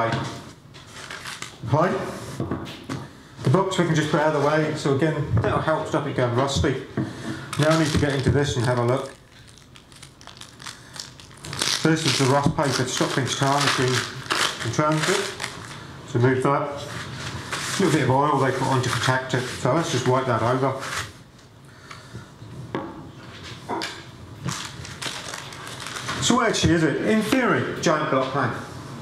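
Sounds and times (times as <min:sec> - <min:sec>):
wrapping paper rustling and crinkling: 0:00.8 - 0:01.7, 0:07.5 - 0:15.8, 0:16.8 - 0:21.1, 0:24.4 - 0:26.8.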